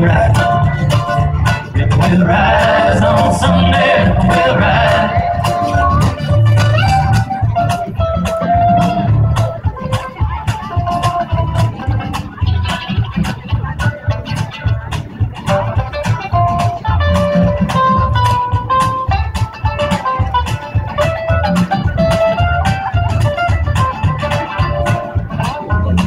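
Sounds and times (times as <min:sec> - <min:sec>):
bass guitar: 0:00.0 - 0:26.0
lead guitar holding notes: 0:00.0 - 0:26.0
steady drum beat: 0:00.0 - 0:26.0.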